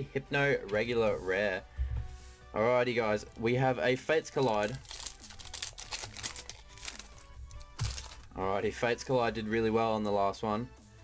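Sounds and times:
faint background music: 0.0s - 11.0s
foil wrapper crinkling and tearing: 4.3s - 8.3s.

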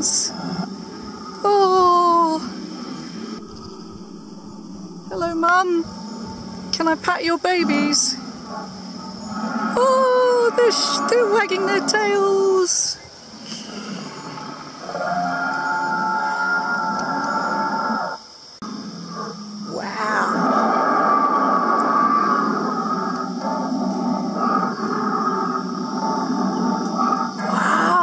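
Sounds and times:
recorded dinosaur roars and growls: 0.0s - 12.3s, 13.3s - 28.0s.

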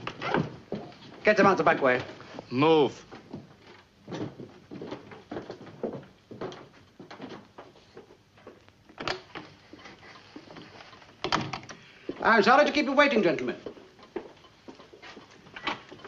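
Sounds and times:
footsteps hurrying along hallway: 0.0s - 16.0s.

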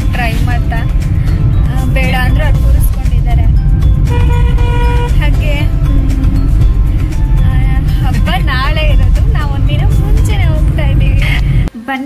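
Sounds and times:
woman's voice: 0.0s - 3.6s, 5.0s - 5.8s, 6.8s - 12.0s
car cabin rumble: 0.0s - 11.7s
background music: 0.0s - 12.0s.

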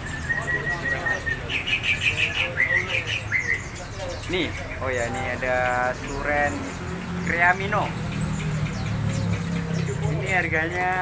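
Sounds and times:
songbirds chirping: 0.0s - 11.0s.

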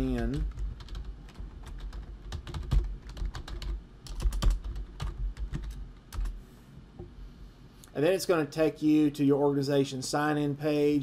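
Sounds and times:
computer keyboard typing: 0.0s - 6.4s.

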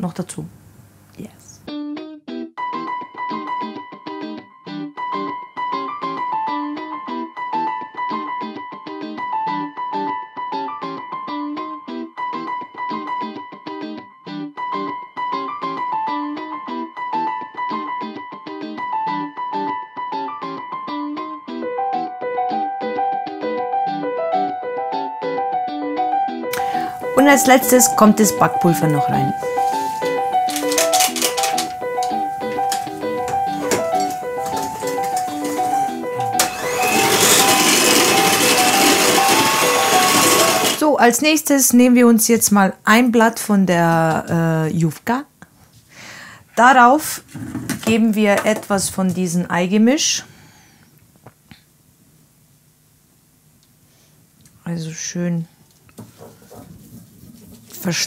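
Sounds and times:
woman's voice: 0.0s - 1.7s, 26.6s - 29.4s, 40.8s - 45.3s, 46.6s - 50.3s, 54.6s - 55.6s, 57.8s - 58.0s
background music: 1.6s - 41.1s
electric hand mixer whirring: 26.6s - 28.6s, 33.6s - 40.9s.

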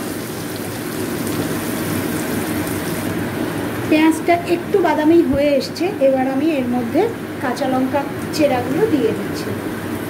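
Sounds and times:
onions sizzling in hot oil: 0.0s - 3.8s.

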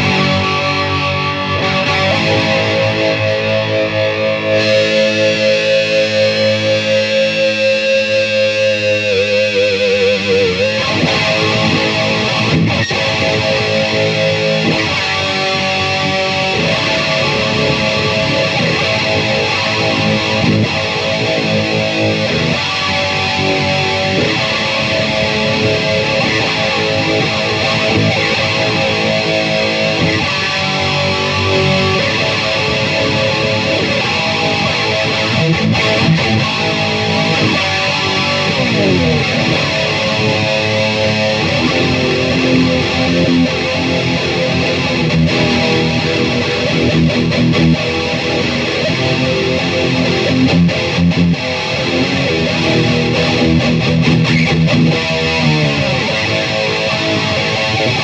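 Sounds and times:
electric guitar riffing: 0.0s - 58.0s.

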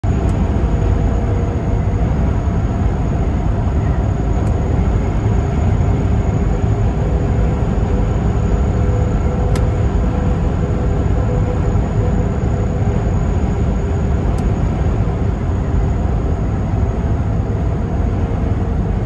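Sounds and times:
truck cab road and engine rumble: 0.0s - 19.0s.

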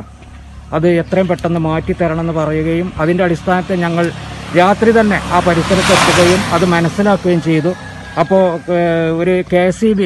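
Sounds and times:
vehicle passing on road: 0.0s - 10.0s
man speaking: 0.7s - 10.0s.

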